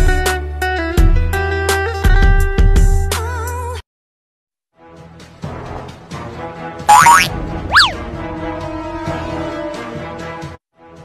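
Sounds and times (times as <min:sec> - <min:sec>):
comedy sliding tone: 0:06.9 - 0:08.0
quick rising and dropping tone: 0:06.9 - 0:08.0.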